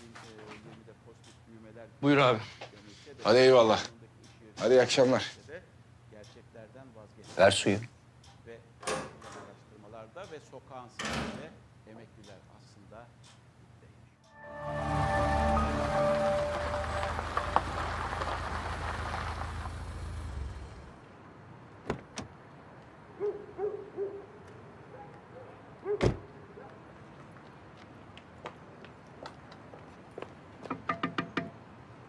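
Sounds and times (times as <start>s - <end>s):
car pulling up: 14.4s - 21.0s.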